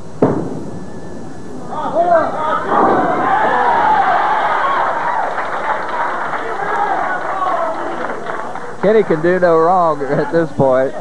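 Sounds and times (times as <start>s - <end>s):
crowd cheering and shouting: 1.7s - 11.0s.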